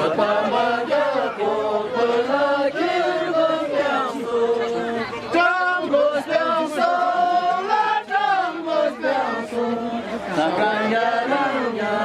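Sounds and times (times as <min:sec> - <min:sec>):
men singing in unison: 0:00.0 - 0:12.0.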